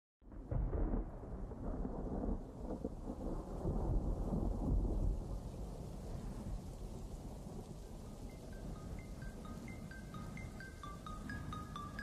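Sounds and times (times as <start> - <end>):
rain: 0.2 - 12.0
thunder rolling: 0.3 - 12.0.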